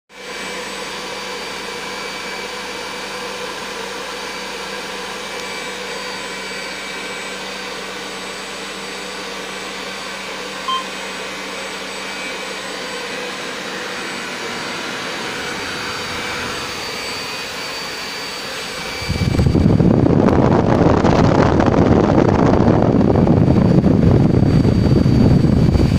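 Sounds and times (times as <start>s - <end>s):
electric ducted fan whining: 0.2s - 25.9s
short beep: 10.7s - 11.0s.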